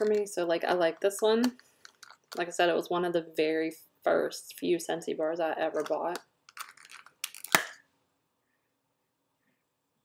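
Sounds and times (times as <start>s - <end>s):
plastic packaging clicking: 1.8s - 2.4s, 6.5s - 7.8s.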